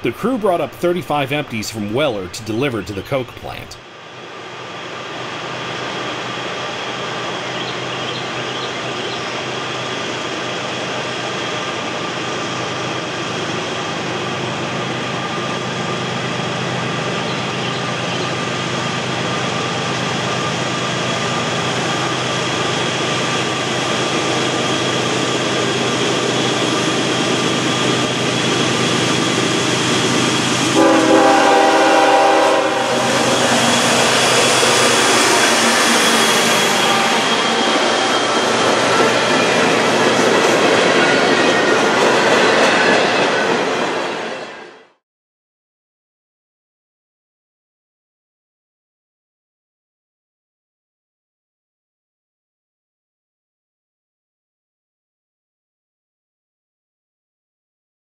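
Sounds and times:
diesel locomotives approaching: 0.0 - 45.0
train horn blast: 30.8 - 37.7.

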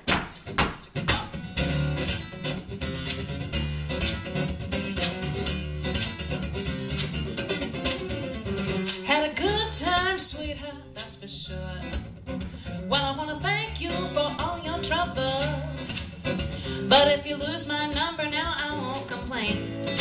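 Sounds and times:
sharp knocks: 0.0 - 1.4
acoustic guitar playing: 0.0 - 20.0
woman singing: 8.9 - 12.0, 12.8 - 15.9, 16.6 - 19.8.

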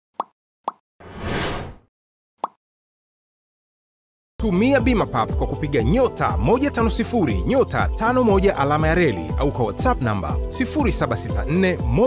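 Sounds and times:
swoosh: 1.0 - 1.8.

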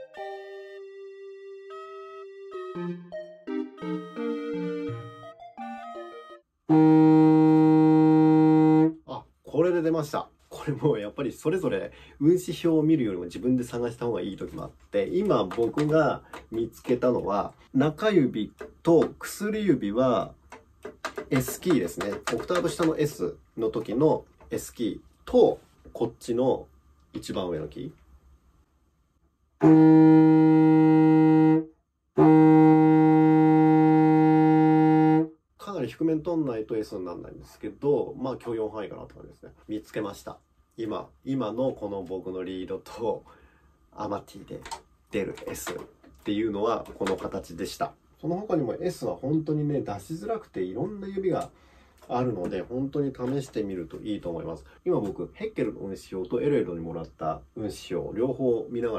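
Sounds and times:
contrabassoon sustained low note: 6.7 - 9.0, 29.6 - 35.3
man speaking: 9.0 - 20.4, 21.2 - 28.0, 35.6 - 43.4, 44.0 - 58.9.

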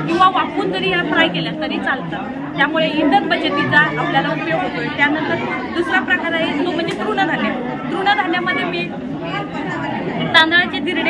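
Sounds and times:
woman talking: 0.0 - 8.9, 10.3 - 11.0
background chatter: 0.0 - 11.0.

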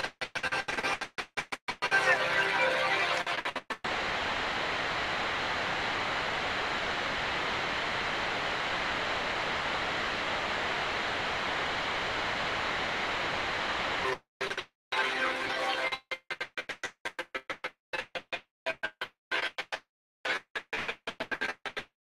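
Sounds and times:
choppy snatches of audio: 0.0 - 10.8
static hiss: 1.9 - 14.2.

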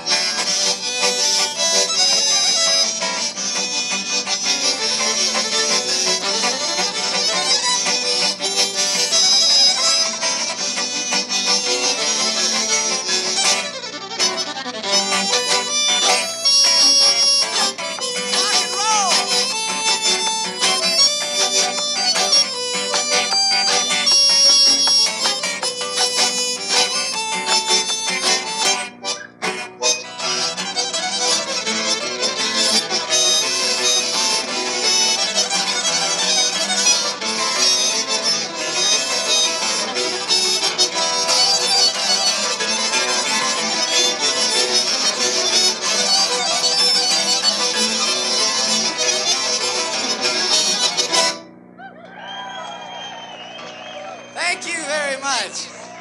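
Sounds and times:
fiddle: 0.0 - 51.5
accordion: 0.0 - 51.7, 52.7 - 56.0
acoustic guitar: 0.0 - 51.8.

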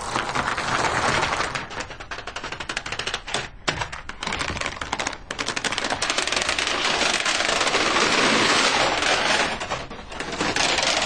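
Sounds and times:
dominoes toppling and clicking: 0.0 - 11.0.

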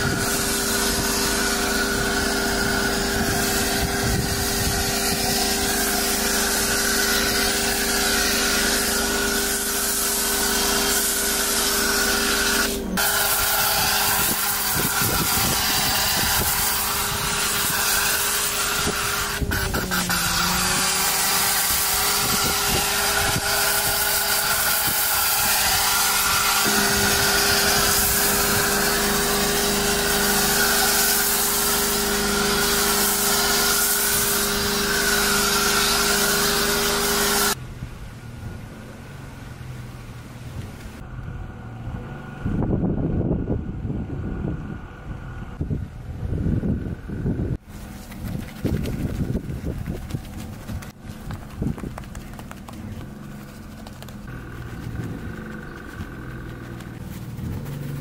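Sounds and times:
pressure washer motor hum: 0.0 - 37.6, 47.8 - 58.0
water spraying hiss: 0.0 - 37.6.

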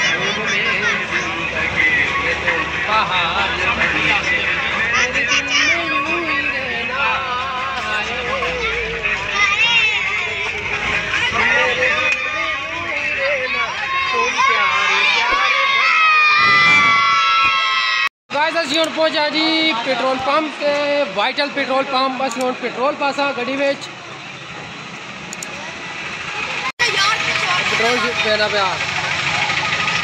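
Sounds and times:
bus engine rumble: 0.0 - 17.0, 22.2 - 30.0
voices talking and calling: 0.0 - 17.6, 18.3 - 30.0
boys shouting a cheer: 11.1 - 18.1.

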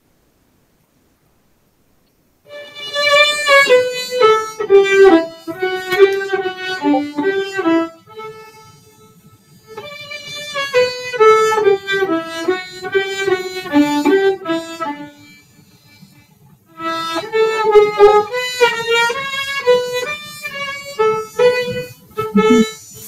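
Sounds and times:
solo violin melody: 2.5 - 22.8.

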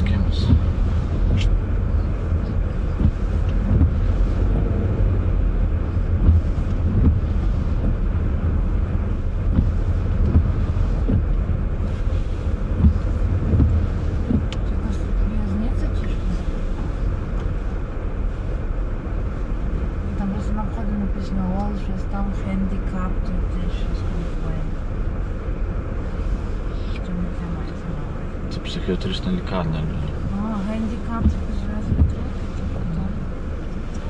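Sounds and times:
car road noise rumble: 0.0 - 34.0.

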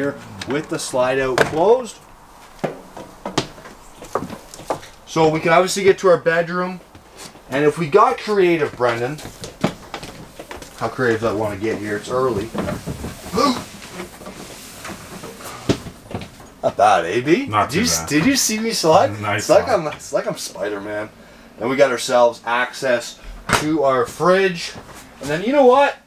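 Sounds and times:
footsteps on trailer steps: 2.4 - 5.1, 8.6 - 16.6.

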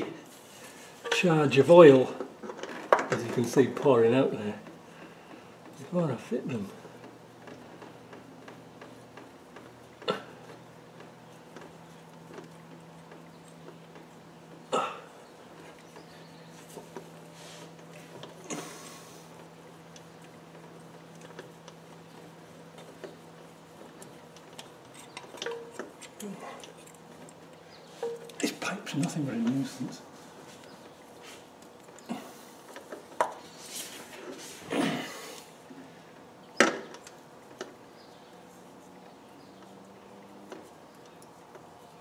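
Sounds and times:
low steady hum: 0.0 - 42.0
oil filter clicks and knocks: 24.0 - 27.4.

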